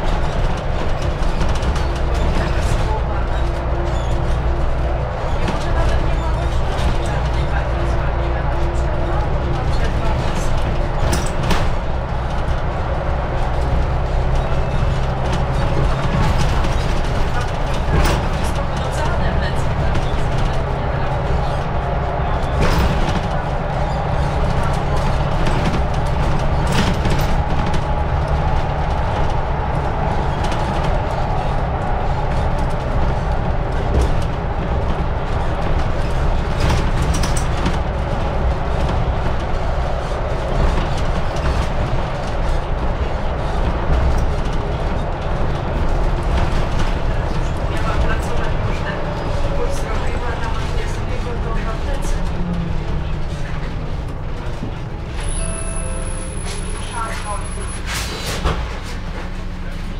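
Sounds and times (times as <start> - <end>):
bus body rattling: 0.0 - 59.9
bus engine and road noise: 0.0 - 59.9.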